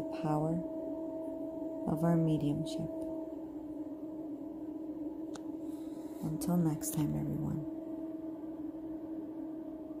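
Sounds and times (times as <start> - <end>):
low sustained drone: 0.0 - 10.0.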